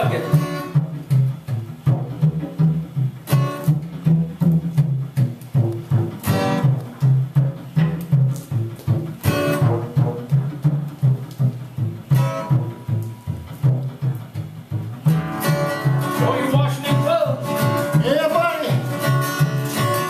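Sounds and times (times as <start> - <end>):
acoustic guitar strumming: 0.0 - 20.0
washtub bass plucked: 0.0 - 20.0.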